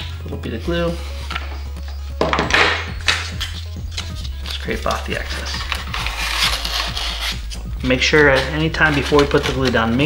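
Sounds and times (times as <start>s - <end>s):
background music: 0.0s - 10.0s
foam board scraping: 3.3s - 10.0s.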